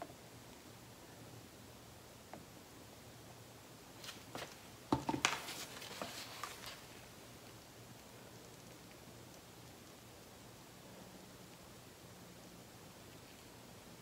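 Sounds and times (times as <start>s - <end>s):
cup knocking and clattering: 4.9s - 5.3s.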